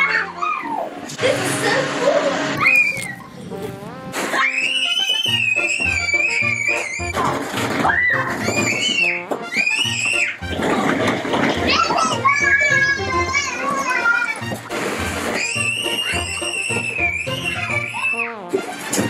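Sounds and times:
children squealing and shrieking: 0:00.0 - 0:01.0, 0:02.5 - 0:03.4, 0:04.3 - 0:10.8, 0:15.2 - 0:18.5
background music with low beat: 0:03.5 - 0:04.5.

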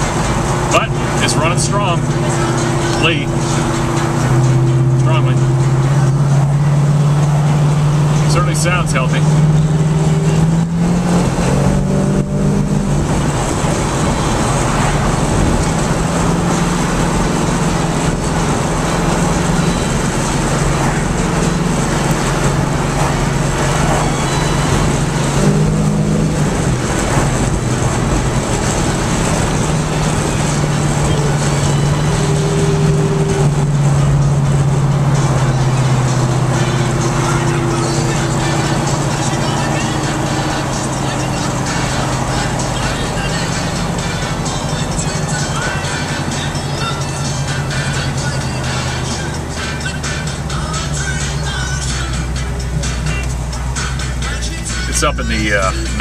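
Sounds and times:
car engine droning at cruise: 0:00.0 - 0:56.0
road and wind noise: 0:00.0 - 0:56.0.

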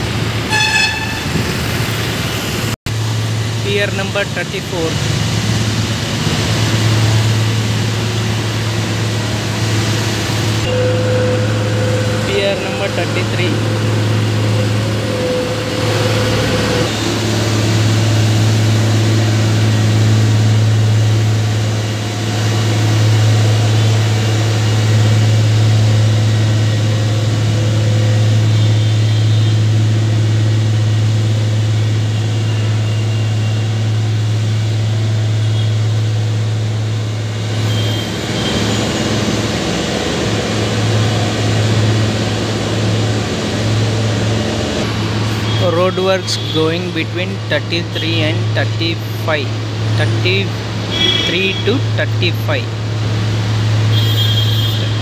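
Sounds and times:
low engine hum: 0:00.0 - 0:55.0
vehicle engines passing: 0:00.0 - 0:55.0.

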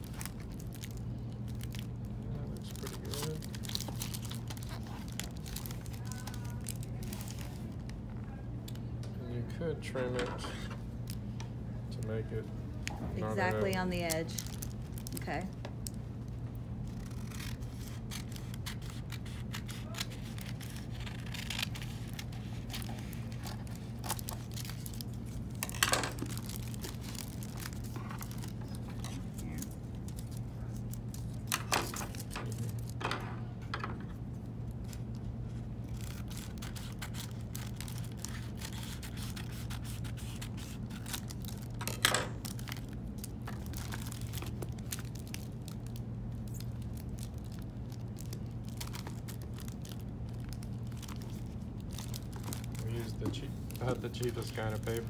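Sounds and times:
paper cover crinkling: 0:00.0 - 0:07.8, 0:16.8 - 0:33.0, 0:34.7 - 0:55.0
steady low hum: 0:00.0 - 0:55.0.

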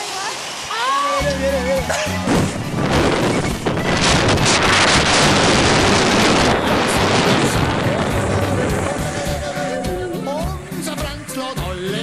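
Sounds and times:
music: 0:01.2 - 0:12.0
wind rushing over microphone: 0:02.2 - 0:10.2.

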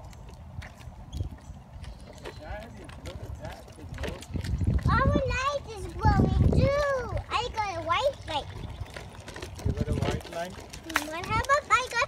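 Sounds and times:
footsteps on asphalt: 0:00.0 - 0:12.0.

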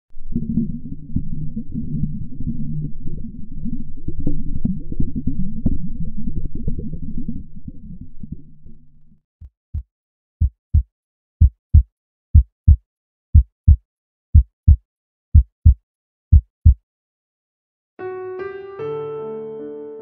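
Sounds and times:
low hum: 0:00.1 - 0:09.2
heartbeat thumps: 0:09.7 - 0:16.8.

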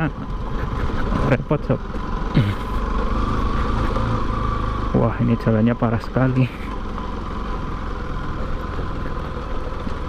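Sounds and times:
motorcycle engine running: 0:00.0 - 0:10.0.

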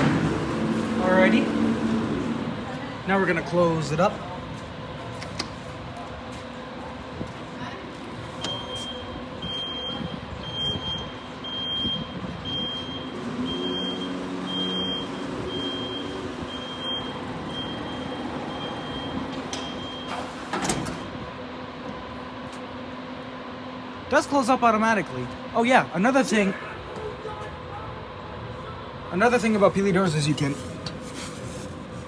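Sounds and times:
high warning beep: 0:08.4 - 0:20.4.

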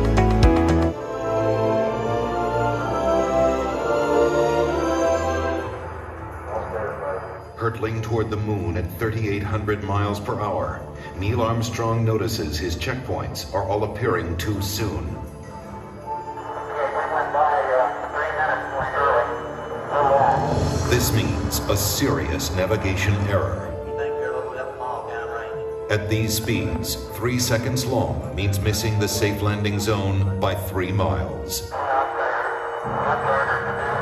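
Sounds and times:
music: 0:00.0 - 0:34.0
radio voice with static: 0:06.4 - 0:08.8, 0:16.5 - 0:25.6, 0:31.6 - 0:34.0.

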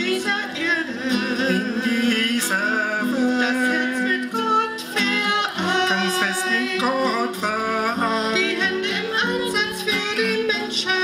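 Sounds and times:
acoustic guitar: 0:00.0 - 0:11.0
person singing: 0:00.0 - 0:11.0.

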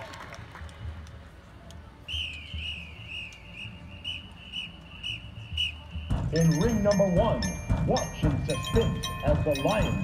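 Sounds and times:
high whistle-like tone: 0:02.0 - 0:06.6.

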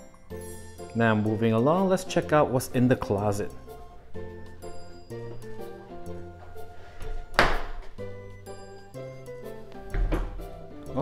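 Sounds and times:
background music: 0:00.0 - 0:11.0
closet door knock: 0:09.9 - 0:10.5.

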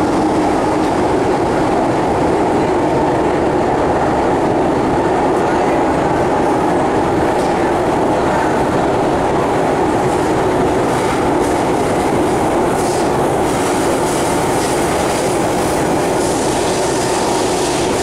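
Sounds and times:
train wheels rumbling on rails: 0:00.0 - 0:18.0.

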